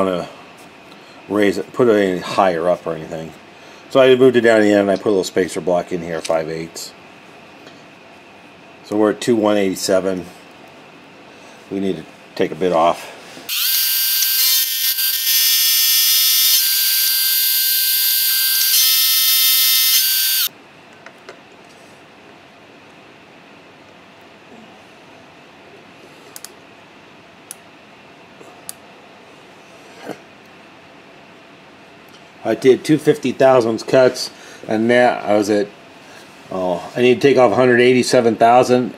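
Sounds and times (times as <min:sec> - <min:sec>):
milling machine cutting: 0:13.5 - 0:20.5.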